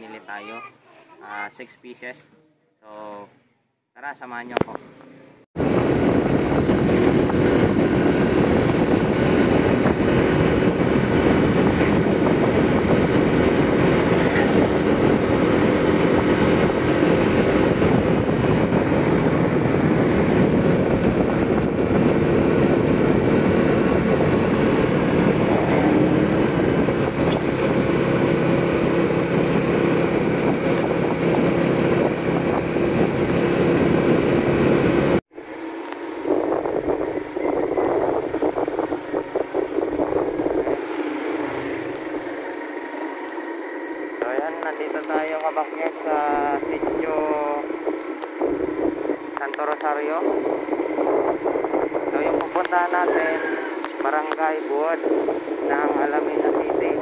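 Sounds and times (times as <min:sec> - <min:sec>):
road noise: 0:00.0 - 0:02.4, 0:03.1 - 0:57.0
rushing wind: 0:05.6 - 0:57.0
motorcycle engine running: 0:05.8 - 0:57.0.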